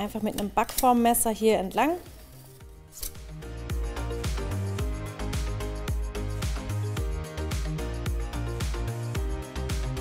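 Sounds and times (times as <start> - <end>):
background music with steady beat: 0.0 - 10.0.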